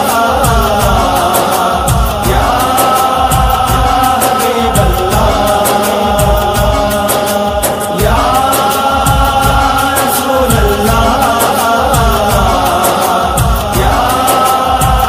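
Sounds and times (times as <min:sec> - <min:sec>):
steady beat: 0:00.0 - 0:15.0
wordless held vocal tones: 0:00.0 - 0:15.0.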